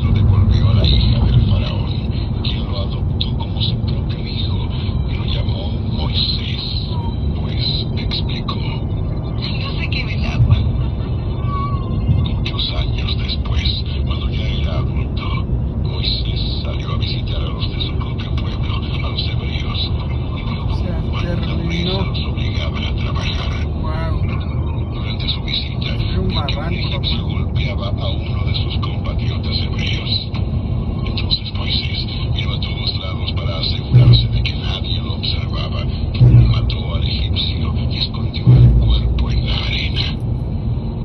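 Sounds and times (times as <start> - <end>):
muffled voices talking: 0.0 - 41.0
road and tyre noise: 0.0 - 41.0.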